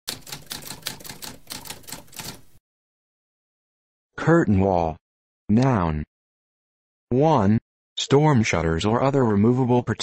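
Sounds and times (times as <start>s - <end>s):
typewriter keys typing: 0.1s - 2.5s.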